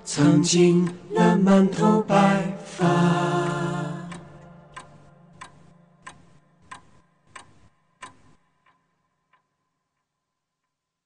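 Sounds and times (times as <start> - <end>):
song accompaniment: 0.0 - 5.9
clock ticking: 0.0 - 10.8.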